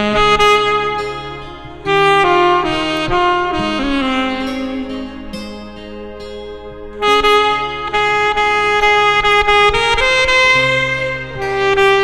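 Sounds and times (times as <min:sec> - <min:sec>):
alto saxophone ballad melody: 0:00.0 - 0:12.0
backing track: 0:00.0 - 0:12.0.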